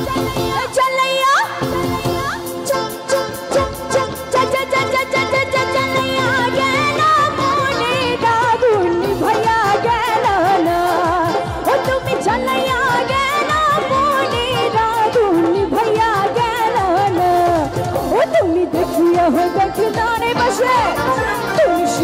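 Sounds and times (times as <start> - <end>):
live band music: 0.0 - 22.0
woman singing: 0.0 - 22.0.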